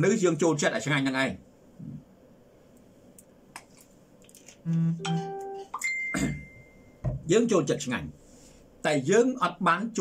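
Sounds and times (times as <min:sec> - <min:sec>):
electronic tones: 0:04.7 - 0:06.8.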